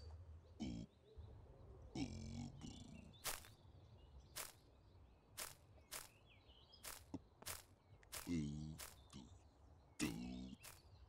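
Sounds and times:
person's wordless vocal sound: 2.0s - 3.2s, 10.0s - 10.7s.

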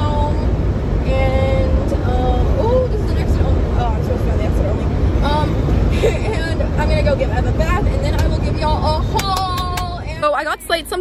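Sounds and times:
road and wind noise in car: 0.0s - 11.0s.

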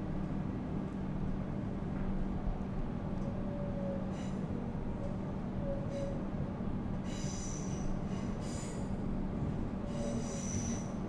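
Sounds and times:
train rumble and hum: 0.0s - 11.0s.

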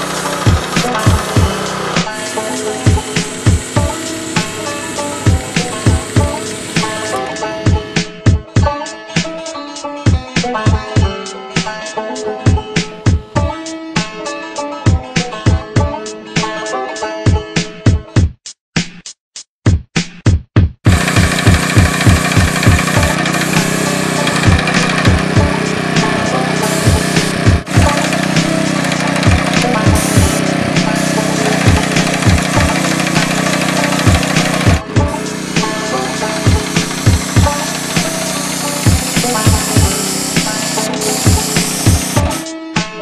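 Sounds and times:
spray gun hissing: 0.0s - 7.9s, 20.9s - 42.4s
pump humming: 0.0s - 8.0s, 20.9s - 42.4s
music with steady beat: 0.0s - 43.0s.

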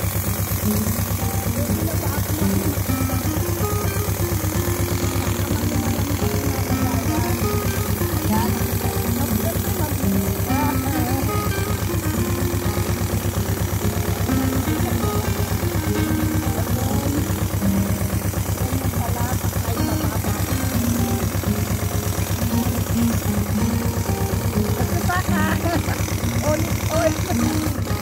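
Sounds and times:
tractor engine idling: 0.0s - 28.0s
background music: 0.8s - 28.0s.

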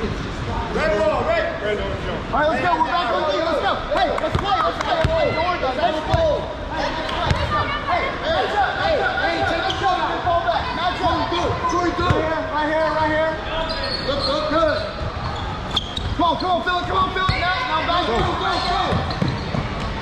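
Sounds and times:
overlapping voices in echoing gym: 0.0s - 20.0s.

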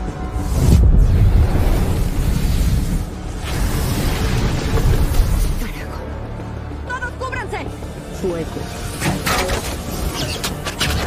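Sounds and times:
dramatic score music: 0.0s - 11.0s.

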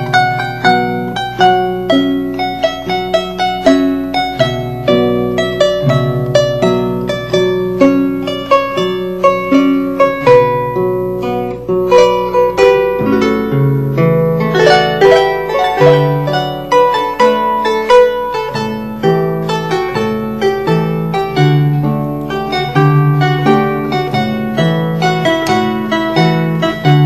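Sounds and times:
harp playing dance tune: 0.0s - 27.0s.

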